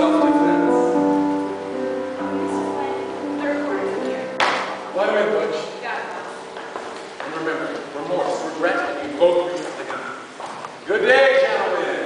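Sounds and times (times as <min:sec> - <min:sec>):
man speaking loudly: 0:04.9 - 0:05.7, 0:07.3 - 0:12.0
footsteps on wooden stage: 0:06.1 - 0:10.8.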